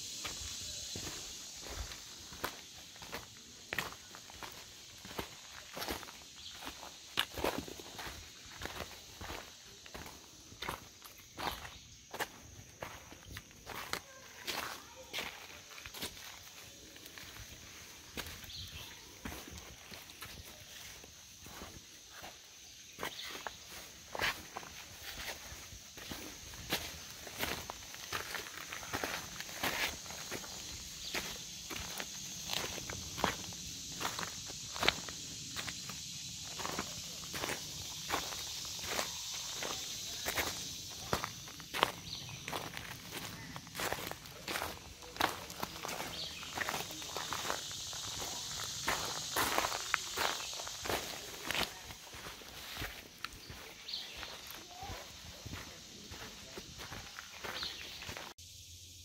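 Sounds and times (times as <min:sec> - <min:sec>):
footsteps on a trail: 0:00.0 - 0:58.4.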